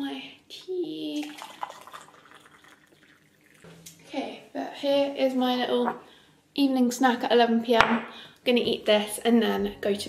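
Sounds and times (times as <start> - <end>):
water trickling into a mug: 1.0 - 4.0
faint water drips: 1.0 - 4.1.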